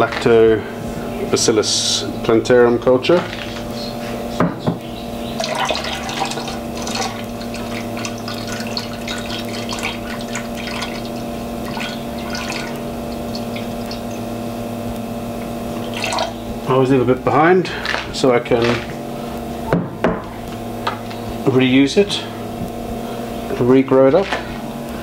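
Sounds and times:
pump humming: 0.0s - 25.0s
liquid pouring and splashing: 5.4s - 14.3s, 15.8s - 16.4s.

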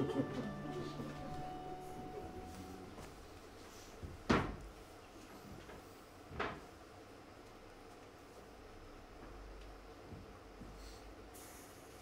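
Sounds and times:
low room noise: 0.0s - 12.0s.

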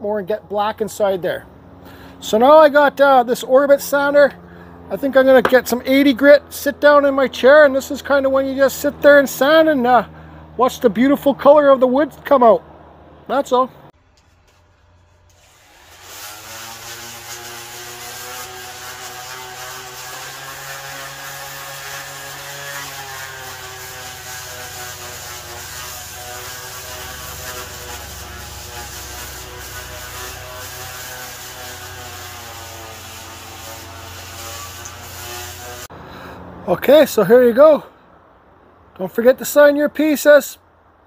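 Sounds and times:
orbital sander on wood: 14.2s - 36.0s.

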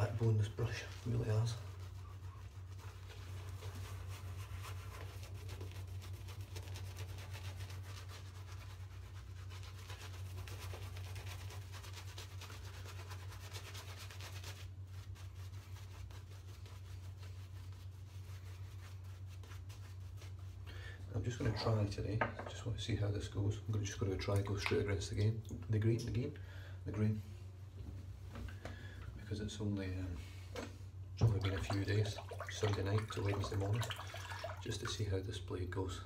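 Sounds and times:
shaving brush scrubbing lather: 0.0s - 20.6s, 31.2s - 35.2s.

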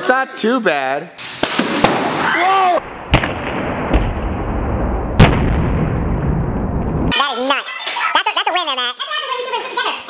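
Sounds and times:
loud sharp bang: 1.2s - 2.4s, 3.0s - 7.1s
people talking: 7.1s - 10.0s.

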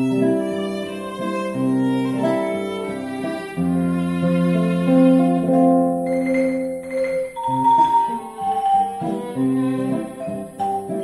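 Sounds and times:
acoustic guitar accompaniment: 0.0s - 11.0s
violin: 0.0s - 11.0s
marimba notes: 6.0s - 11.0s.

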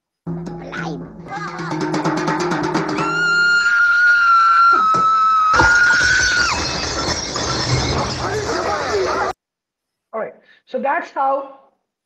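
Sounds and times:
rapid drum roll: 0.3s - 3.6s
boy screaming: 1.3s - 1.8s, 3.0s - 6.3s
glass breaking crash: 5.6s - 9.4s.

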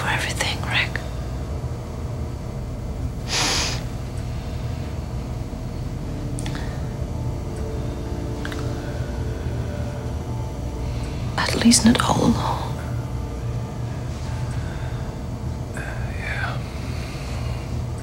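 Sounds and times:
breathy whispering: 0.0s - 1.3s, 14.6s - 17.9s
steady low hum: 0.0s - 18.0s.

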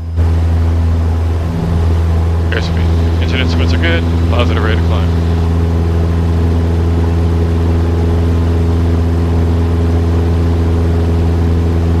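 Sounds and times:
light aircraft engine drone: 0.0s - 12.0s.

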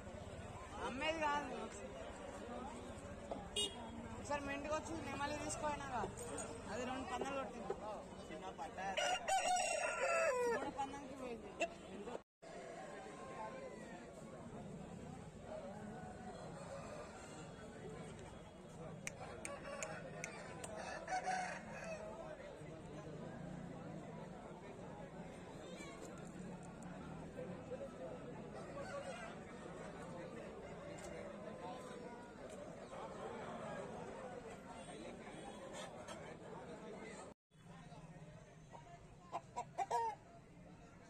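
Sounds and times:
rooster crowing: 9.0s - 10.6s.

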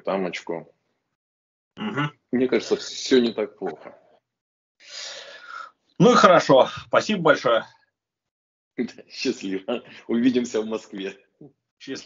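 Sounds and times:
person breathing: 4.8s - 5.8s.

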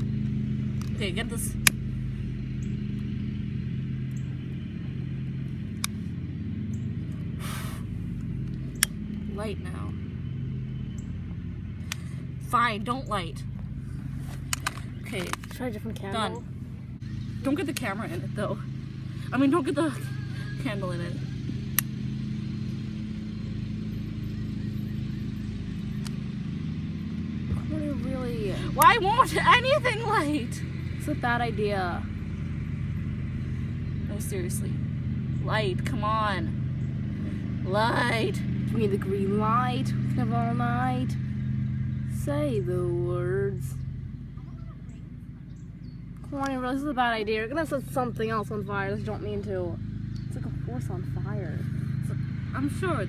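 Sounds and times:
low machine hum: 0.0s - 53.0s.

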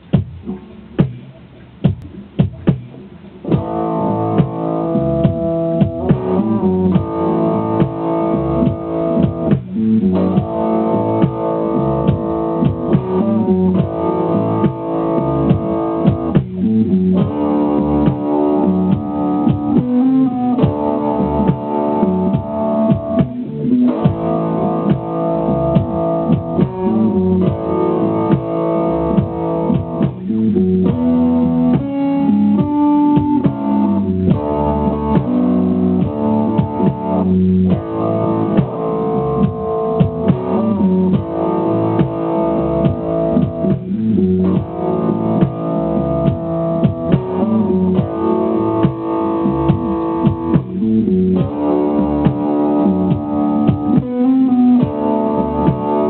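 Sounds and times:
slow rock blues band backing: 3.6s - 56.0s.

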